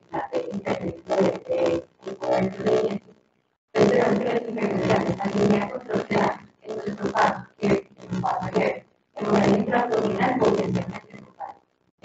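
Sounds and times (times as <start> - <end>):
woman speaking over microphone: 0.0 - 3.0, 3.8 - 11.5.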